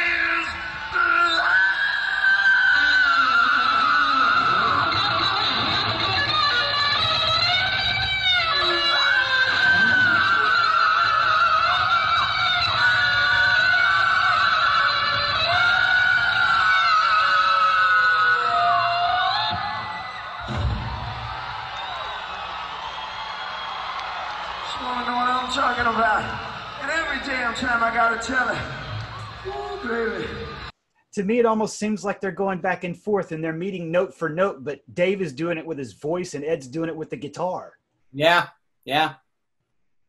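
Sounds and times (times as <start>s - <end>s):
man singing: 0.0s - 5.7s.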